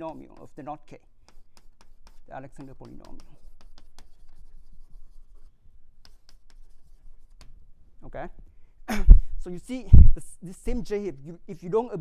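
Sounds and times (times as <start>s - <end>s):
chalk scratching on blackboard: 0.0s - 7.6s
chalk tapping on blackboard: 0.0s - 7.6s.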